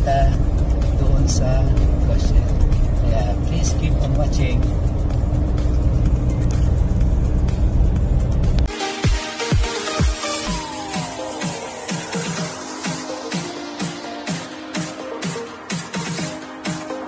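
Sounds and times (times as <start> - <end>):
car cabin road and engine rumble: 0.0 - 8.7.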